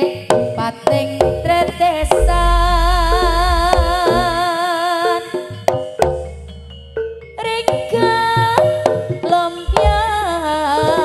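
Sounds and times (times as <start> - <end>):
ringing metal percussion: 0.0 - 11.0
kendang drum strokes: 1.3 - 4.5, 9.7 - 11.0
deep low note: 2.0 - 4.4.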